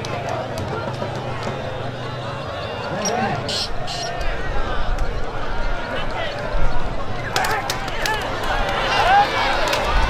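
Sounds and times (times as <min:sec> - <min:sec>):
crowd chatter: 0:00.0 - 0:10.0
men talking over one another: 0:00.0 - 0:10.0.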